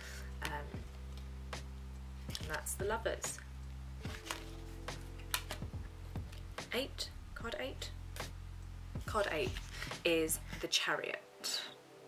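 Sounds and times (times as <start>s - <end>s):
soft background music: 0.0s - 12.0s
cards clicking and tapping: 4.1s - 6.4s.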